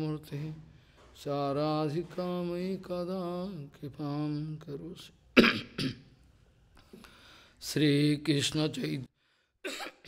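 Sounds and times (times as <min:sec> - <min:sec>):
elderly man coughing: 0:05.4 - 0:06.1, 0:09.6 - 0:10.0.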